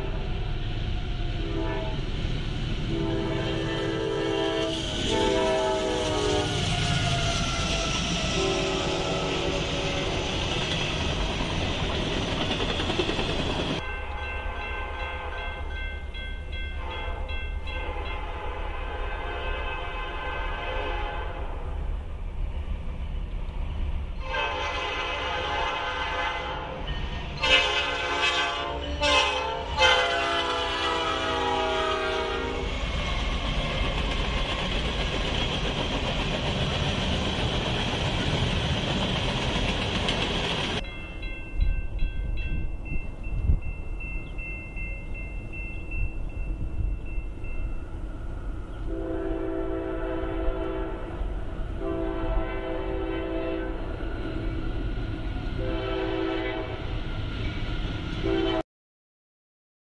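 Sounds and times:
train horn blasts: 1.4s - 2.1s, 2.9s - 10.2s, 13.8s - 15.7s, 16.8s - 21.8s, 24.2s - 32.7s, 48.8s - 54.0s, 55.6s - 56.9s, 58.2s - 58.6s.

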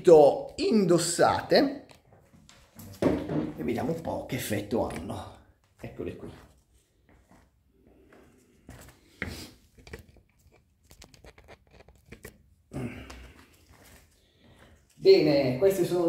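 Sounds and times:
running shoes rustling and knocking: 2.0s - 15.0s.

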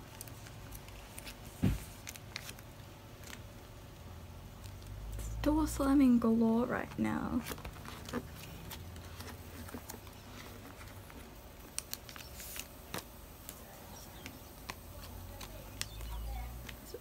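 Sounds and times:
plastic sleeves crinkling: 0.0s - 5.2s, 6.0s - 17.0s.

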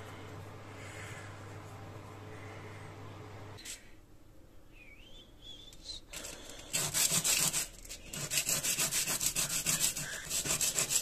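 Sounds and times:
blade scraping on sandpaper: 6.2s - 11.0s.

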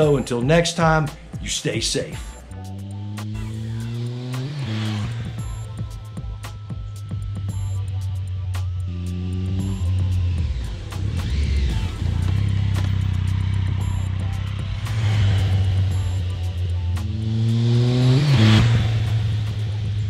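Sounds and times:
background music: 0.0s - 20.0s
motorcycle engine accelerating: 2.2s - 20.0s.

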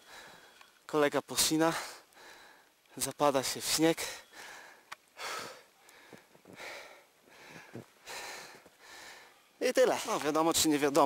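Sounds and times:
person breathing heavily: 0.0s - 0.6s, 1.8s - 2.7s, 4.2s - 9.5s.

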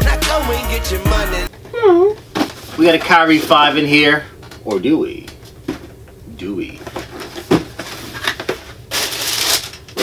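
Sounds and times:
loud paper crinkling: 7.0s - 10.0s
tissue paper rustling: 7.1s - 10.0s.

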